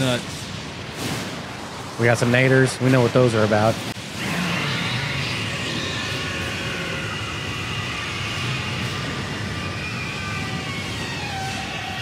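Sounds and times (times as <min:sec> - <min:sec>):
rushing howling wind roar: 0:04.0 - 0:12.0.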